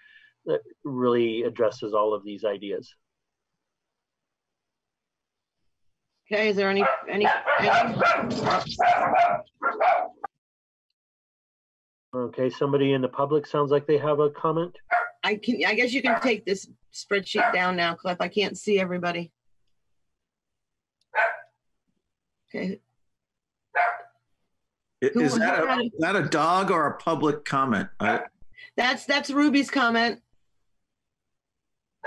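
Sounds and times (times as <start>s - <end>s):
dog barking: 6.7s - 10.3s, 14.9s - 15.2s, 16.0s - 16.3s, 17.4s - 17.7s, 21.1s - 21.6s, 23.7s - 24.2s.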